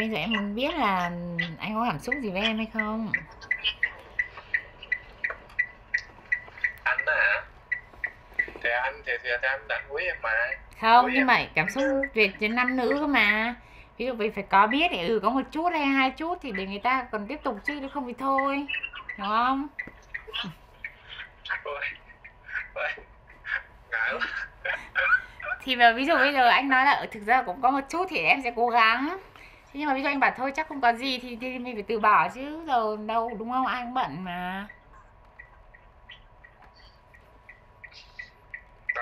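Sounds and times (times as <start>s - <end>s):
clock-like ticking: 0.0s - 24.1s, 29.8s - 39.0s.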